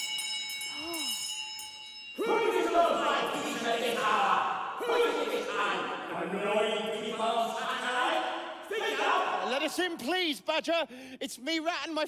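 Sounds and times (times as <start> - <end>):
doorbell chime ringing: 0.0 - 2.2.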